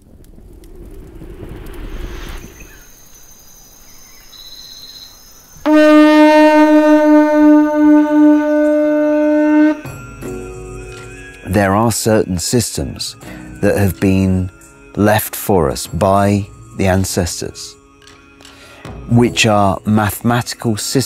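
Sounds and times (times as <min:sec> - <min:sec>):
low rumbling noise: 0:00.0 - 0:03.3
conch shell trumpet note: 0:05.7 - 0:09.9.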